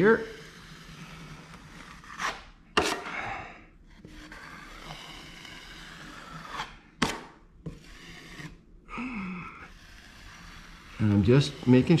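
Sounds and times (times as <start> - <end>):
soft steady rubbing: 0.0 - 2.6, 3.7 - 8.8, 9.4 - 12.0
drywall knife scraping: 0.0 - 8.7, 9.4 - 12.0.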